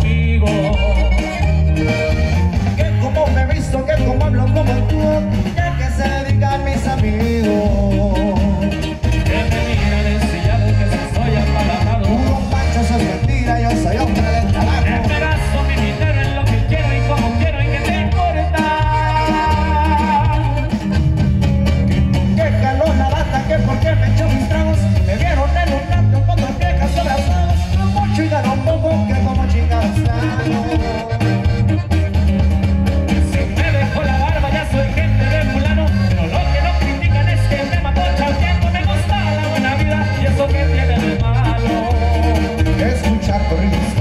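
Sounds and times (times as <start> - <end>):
accordion: 0.0 - 44.0
band playing loudly: 0.0 - 44.0
bass line: 0.0 - 44.0
drums: 0.0 - 44.0
guitar: 0.0 - 44.0.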